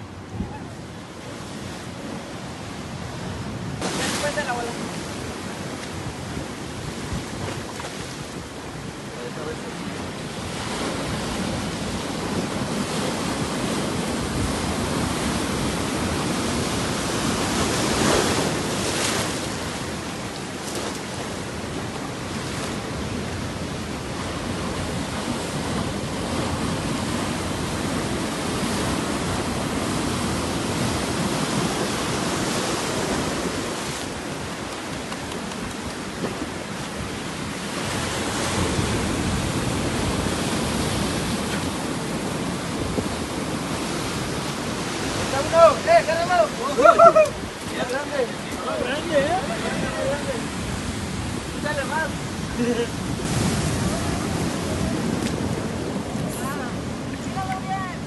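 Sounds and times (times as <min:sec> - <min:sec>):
ocean surf breaking on rocks: 0:00.0 - 0:58.0.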